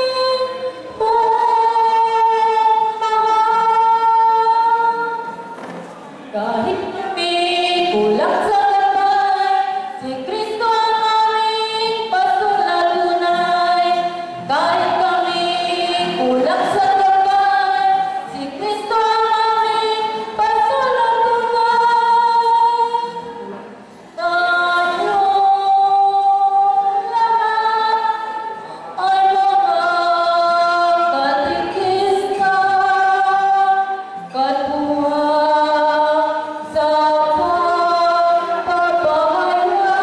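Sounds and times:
women singing together: 0.0s - 5.4s, 6.3s - 23.4s, 24.2s - 40.0s
acoustic guitar: 0.0s - 40.0s.

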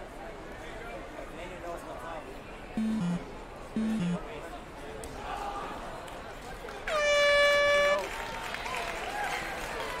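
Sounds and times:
people talking: 0.0s - 6.9s
horn blast: 6.9s - 8.1s.

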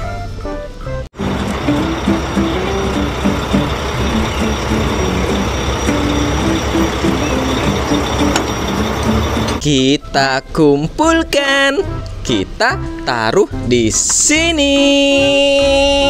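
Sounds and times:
truck engine running: 1.2s - 9.6s.

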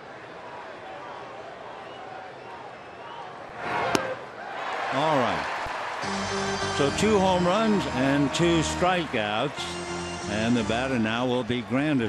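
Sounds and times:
crowd murmuring and cheering: 4.9s - 12.0s.

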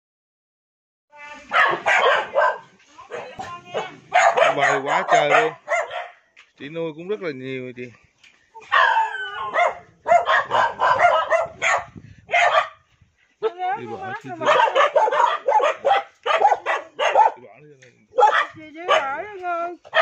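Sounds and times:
dogs barking: 1.5s - 6.2s, 8.6s - 12.8s, 14.4s - 17.4s, 18.2s - 19.2s.

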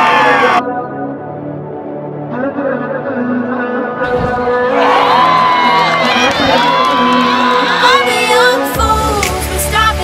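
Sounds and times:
spectators cheering and shouting: 0.0s - 0.7s, 4.1s - 9.3s
background music: 0.0s - 10.0s.

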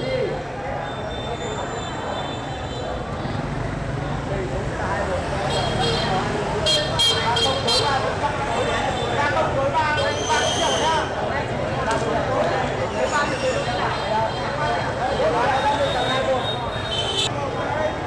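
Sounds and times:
street crowd chatter: 0.0s - 18.0s
traffic rumble: 0.0s - 18.0s.

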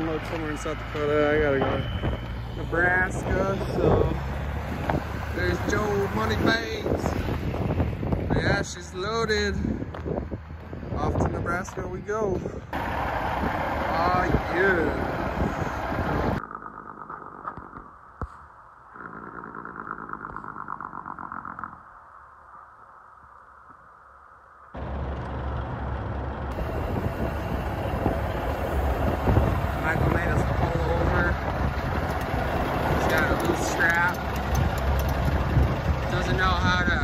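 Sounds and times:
truck engine rumble: 0.0s - 18.2s, 24.8s - 37.0s
road noise: 0.0s - 22.2s, 24.1s - 37.0s.

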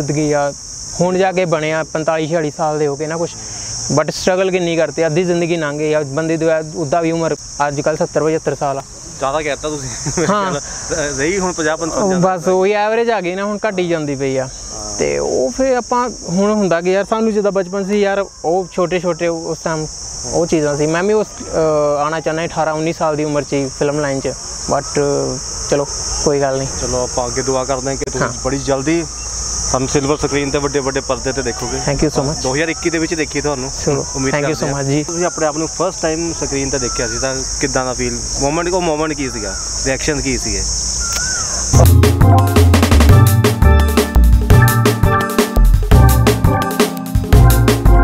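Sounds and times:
men talking: 0.0s - 41.9s
chirring insects: 0.0s - 48.0s.

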